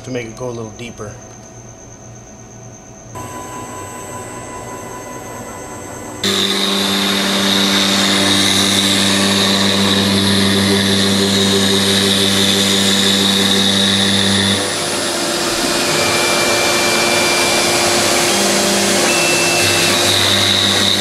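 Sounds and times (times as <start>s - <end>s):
cnc router cutting with whine: 0.0s - 21.0s
low hum: 0.0s - 21.0s.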